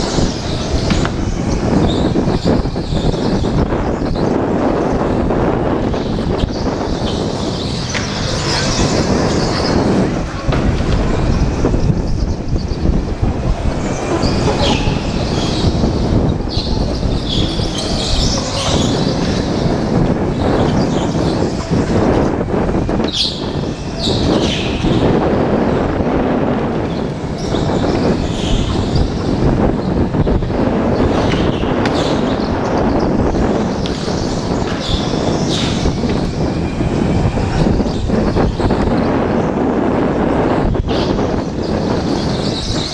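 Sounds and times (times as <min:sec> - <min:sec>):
go-kart engine rumble and rattle: 0:00.0 - 0:42.9
tyres squealing: 0:05.8 - 0:26.0.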